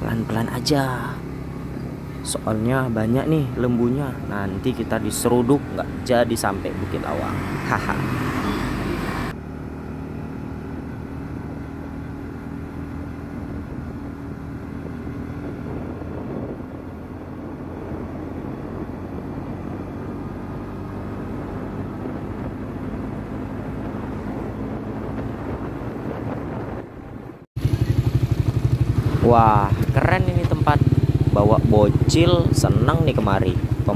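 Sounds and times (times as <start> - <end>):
vehicle engine and road noise: 0.0 - 33.9.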